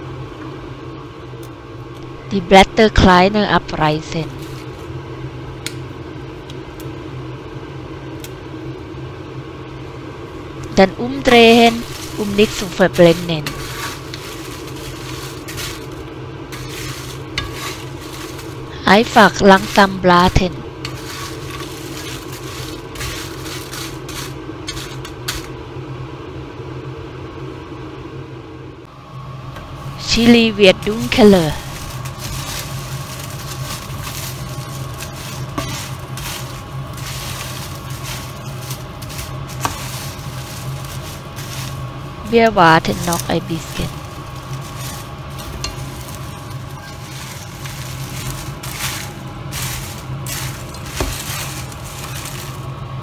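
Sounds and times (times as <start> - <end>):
kitchen fan humming: 0.0 - 53.0
dried chillies crackling in pan: 11.5 - 25.5, 30.2 - 52.8.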